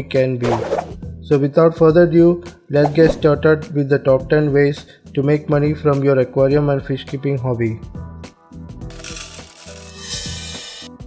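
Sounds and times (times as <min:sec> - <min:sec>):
background music: 0:00.0 - 0:11.0
coins jingling and clinking: 0:08.9 - 0:10.2.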